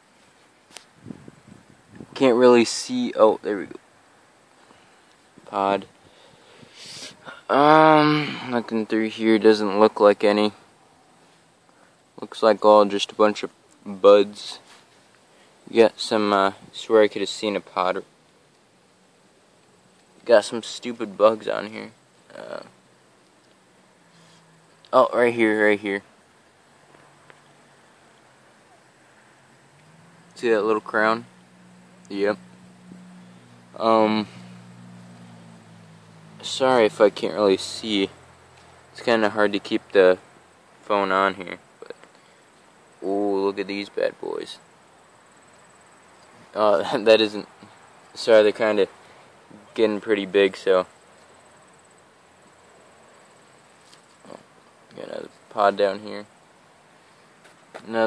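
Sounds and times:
faint low hum: 0:00.0 - 0:58.0
outdoor background hiss: 0:00.0 - 0:58.0
insect trilling: 0:20.4 - 0:48.3, 0:48.9 - 0:57.3.

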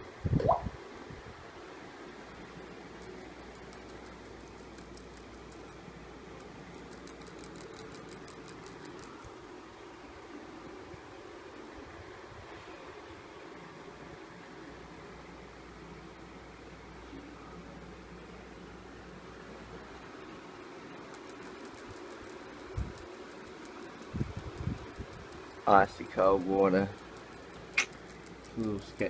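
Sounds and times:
steady low hiss: 0:00.0 - 0:29.0
rats clicking in wire cage: 0:02.8 - 0:09.2, 0:20.9 - 0:29.0.

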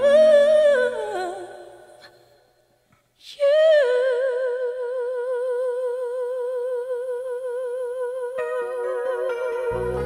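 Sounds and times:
soft low accompaniment: 0:08.4 - 0:10.0.

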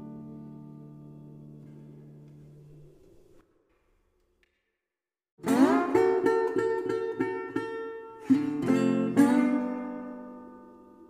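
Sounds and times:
strummed acoustic guitar: 0:05.4 - 0:11.0.

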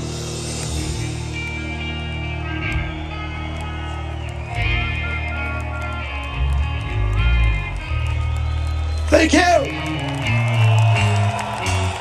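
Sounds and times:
bass guitar: 0:00.0 - 0:12.0
drums: 0:00.0 - 0:12.0
electric guitar melody: 0:00.0 - 0:12.0.

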